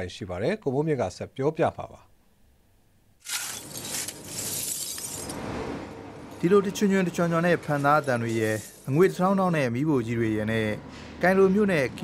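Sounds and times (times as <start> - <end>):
shovel crunching broken glass: 3.2 - 5.4.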